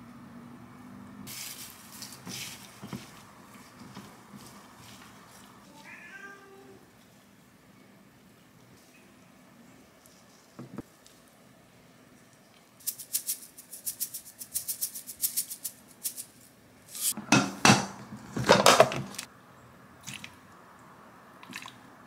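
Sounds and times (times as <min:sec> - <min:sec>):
seasoning shaker rattling: 0:01.3 - 0:05.0, 0:12.8 - 0:17.2
ladle scooping sloshing liquid: 0:21.4 - 0:21.8.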